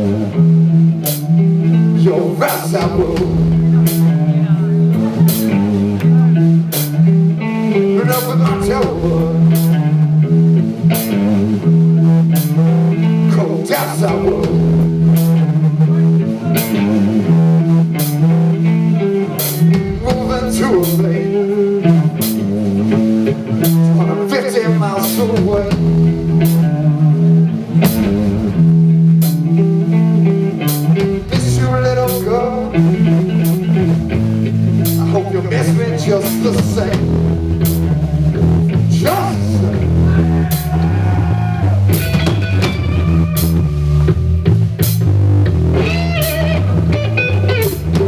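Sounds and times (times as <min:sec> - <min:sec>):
bass guitar: 0:00.0 - 0:48.0
drum kit: 0:00.0 - 0:48.0
electric guitar: 0:00.0 - 0:48.0.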